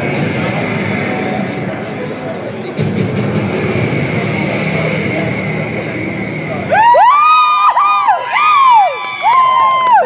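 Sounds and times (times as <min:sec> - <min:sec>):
low rumbling music: 0:00.0 - 0:07.6
onlookers whooping cheers: 0:06.7 - 0:10.0.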